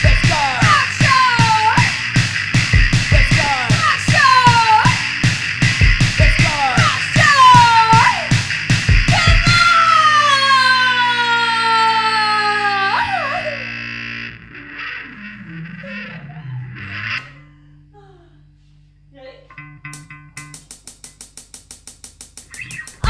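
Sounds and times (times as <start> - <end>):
fast electronic pulse: 0.0 - 9.7, 12.2 - 17.6, 20.6 - 23.0
distorted bass guitar note sliding down: 0.0 - 21.4, 22.4 - 23.0
amplifier hum: 0.0 - 23.0.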